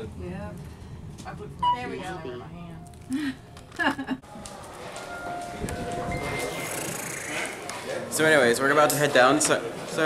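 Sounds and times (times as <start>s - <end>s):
elevator rumbling: 5.0s - 7.7s.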